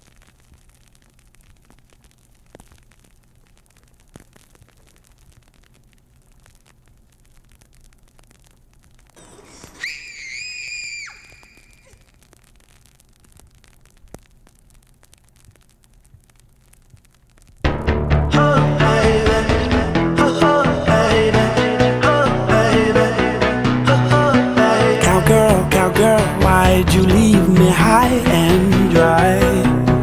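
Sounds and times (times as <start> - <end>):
faint hiss: 0.0 - 17.7
girl screaming: 9.2 - 12.1
low hum: 17.6 - 30.0.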